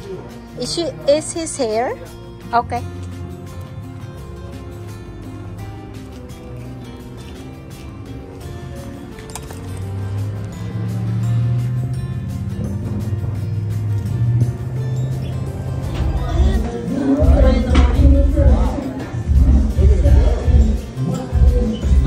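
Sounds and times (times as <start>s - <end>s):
bass line: 9.8s - 22.0s
steady drum beat: 15.4s - 22.0s.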